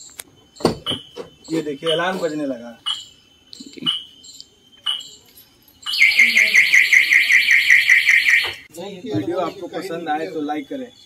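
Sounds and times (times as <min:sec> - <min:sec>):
car alarm pulsing siren: 0:00.7 - 0:03.2, 0:05.8 - 0:08.7
car alarm short high beeps: 0:03.9 - 0:08.7.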